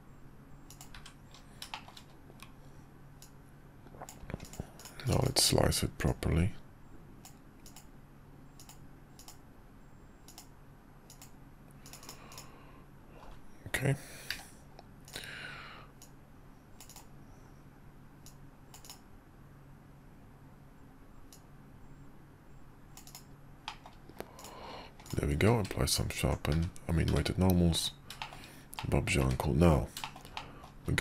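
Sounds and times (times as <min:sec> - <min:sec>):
low steady hum: 0:00.0 - 0:31.0
keyboard and mouse clicking: 0:00.7 - 0:02.5, 0:03.2 - 0:05.3, 0:07.2 - 0:07.9, 0:08.6 - 0:09.4, 0:10.2 - 0:10.5, 0:11.1 - 0:12.5, 0:16.8 - 0:17.1, 0:18.2 - 0:19.0, 0:23.0 - 0:30.8.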